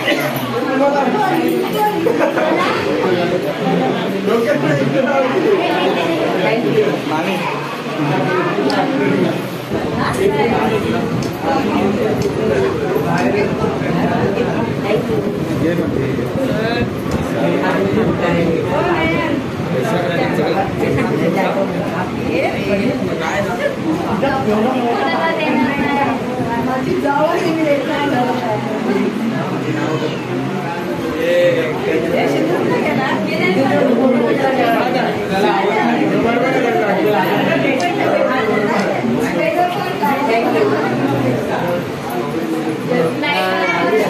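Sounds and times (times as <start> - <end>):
people chattering: 0.0 - 44.0.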